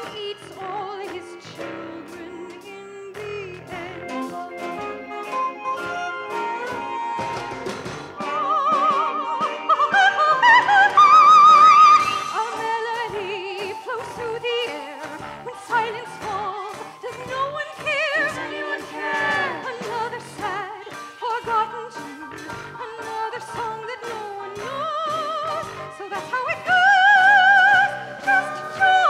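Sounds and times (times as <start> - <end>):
person singing with wide vibrato: 0.0 - 7.4, 8.2 - 29.0
musical accompaniment: 0.0 - 29.0.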